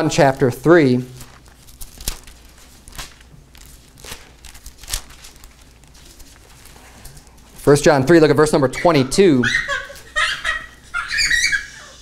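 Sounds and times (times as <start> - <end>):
high-pitched vocal squeals: 8.8 - 10.0, 11.0 - 12.0.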